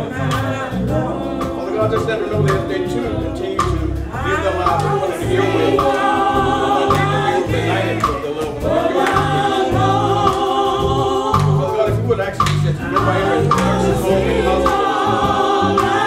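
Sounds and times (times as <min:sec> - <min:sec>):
gospel group singing: 0:00.0 - 0:16.0
low pulsing instrumental backing: 0:00.0 - 0:16.0.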